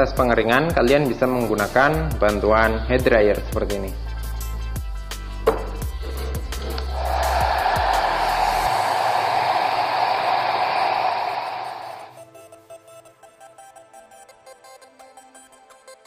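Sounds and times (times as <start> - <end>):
hair dryer blowing: 7.0 - 12.1.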